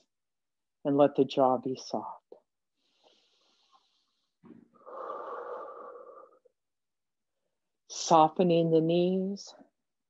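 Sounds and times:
woman breathing deeply: 0:02.8 - 0:06.6.

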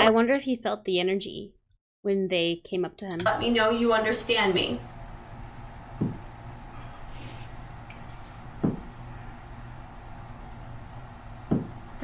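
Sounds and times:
low steady hum: 0:03.1 - 0:12.0
heavy knocks: 0:06.0 - 0:06.3, 0:08.6 - 0:08.9, 0:11.5 - 0:11.8.

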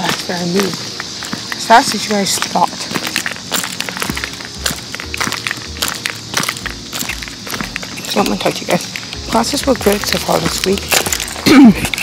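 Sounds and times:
footsteps walking: 0:00.0 - 0:12.0.

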